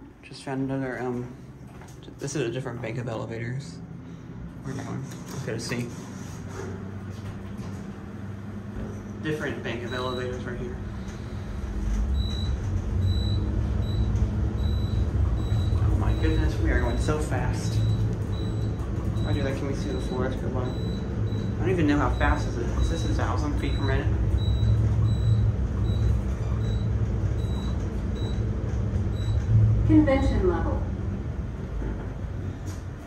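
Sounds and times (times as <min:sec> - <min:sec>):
elevator descending rumble: 0:00.0 - 0:33.0.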